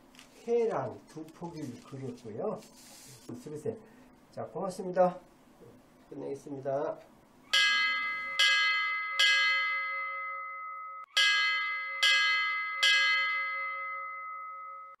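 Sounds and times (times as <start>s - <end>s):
bell strikes ringing: 7.5s - 15.0s.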